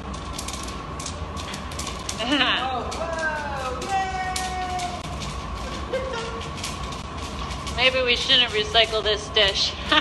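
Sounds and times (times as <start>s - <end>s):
furnace roaring: 0.0s - 10.0s
popcorn popping and crackling: 0.0s - 10.0s.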